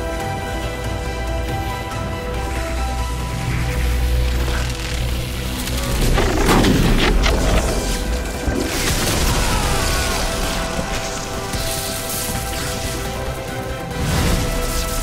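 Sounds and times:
dramatic film score: 0.0 - 15.0
booming electric lightning effects: 2.5 - 15.0.

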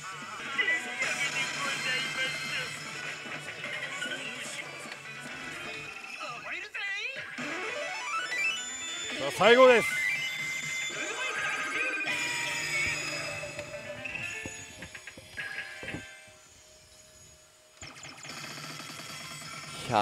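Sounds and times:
slot machine electronic music: 0.0 - 6.4, 7.3 - 16.3.

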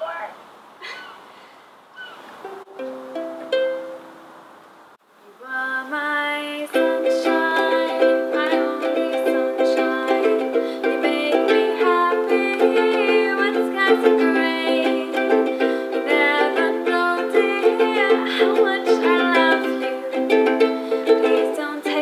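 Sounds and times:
ukulele strumming chords: 2.4 - 4.4, 6.6 - 22.0
ukulele plucked notes: 2.5 - 4.4, 6.7 - 22.0.

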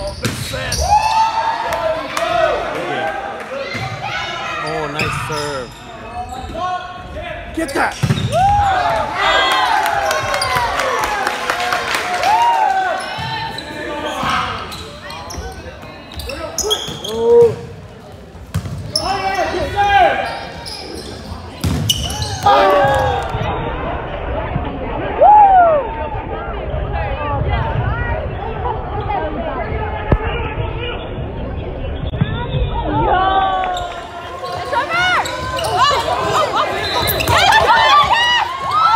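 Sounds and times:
sneakers squeaking on gym floor: 0.0 - 1.0, 4.6 - 6.8, 7.6 - 8.9, 13.0 - 23.1, 33.5 - 38.9
volleyball hits: 7.9 - 10.8, 21.6 - 23.5
voices calling out echoing: 27.8 - 38.9.

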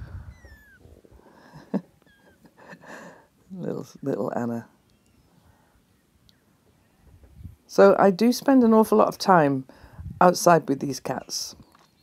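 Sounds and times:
kitten mewing: 0.0 - 1.0.

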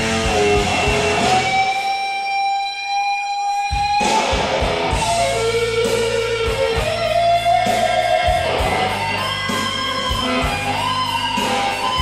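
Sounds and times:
blues-rock band playing: 0.0 - 12.0
drums and bass: 0.0 - 12.0.

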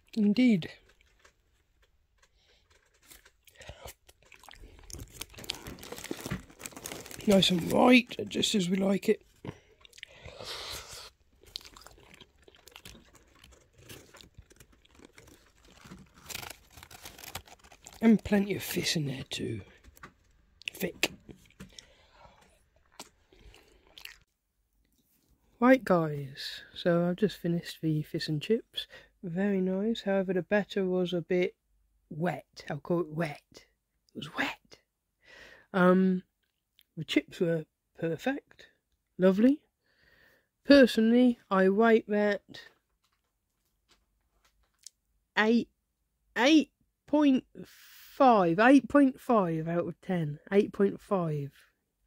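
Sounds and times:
paper crinkling: 0.7 - 9.5, 11.0 - 21.8
chewing crunchy food: 2.2 - 7.6, 9.2 - 18.0, 19.6 - 24.3
fried fish pulled apart crackling: 2.2 - 7.7, 9.4 - 18.0.

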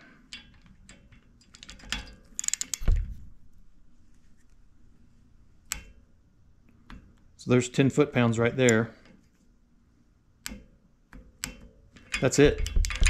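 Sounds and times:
torque wrench clicks: 2.4 - 2.9.

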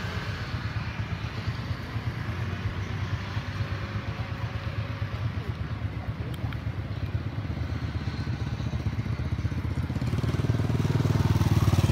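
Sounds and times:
motor scooter engine running: 3.3 - 11.9.

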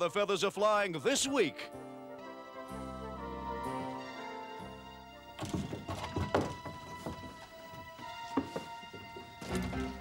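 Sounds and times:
background music: 0.0 - 10.0
thumps and knocks: 5.4 - 7.4.

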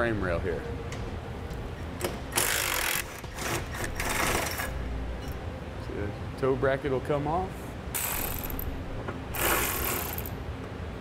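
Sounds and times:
impact wrench hammering: 8.0 - 10.4.

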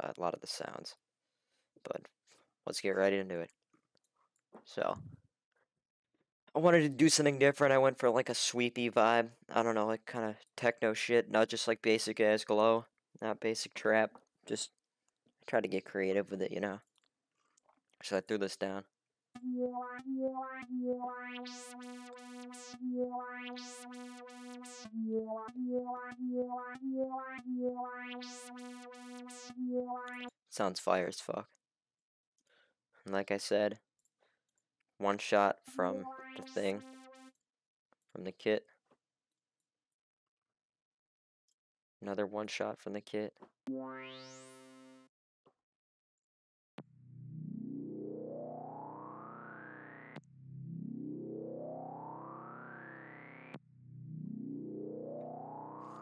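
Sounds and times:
synth melody with filter sweep: 19.4 - 30.4, 35.5 - 37.4, 43.7 - 45.1, 46.8 - 56.0.

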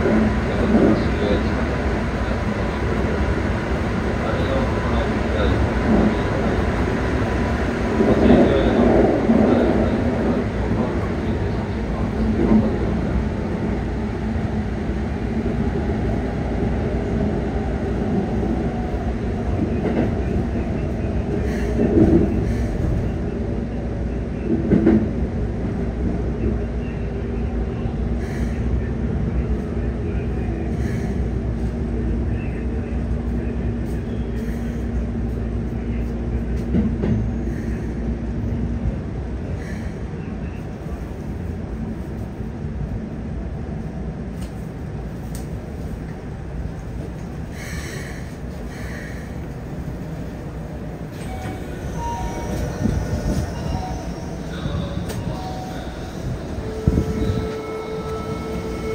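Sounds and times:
electric train rumbling hum: 0.0 - 58.9.

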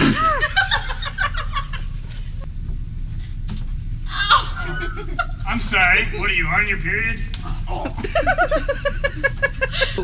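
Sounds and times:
steady low hum: 0.0 - 10.0
person laughing: 7.7 - 10.0.

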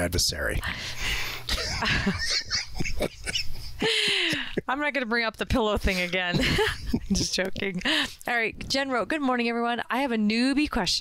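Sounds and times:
man and woman laughing: 1.5 - 4.7, 6.2 - 8.2.

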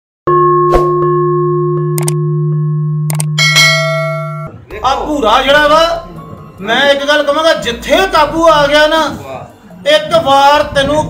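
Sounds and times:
sustained bell-like tone: 0.5 - 4.6
bright bell chime: 3.4 - 4.6.

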